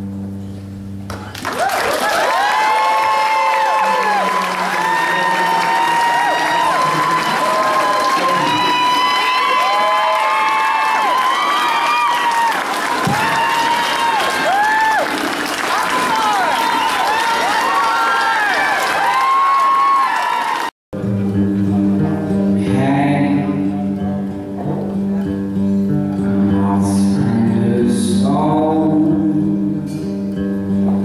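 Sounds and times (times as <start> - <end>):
audience applauding and cheering: 1.1 - 20.8
person singing: 3.8 - 8.8, 21.0 - 31.0
acoustic guitar chord: 21.0 - 31.0.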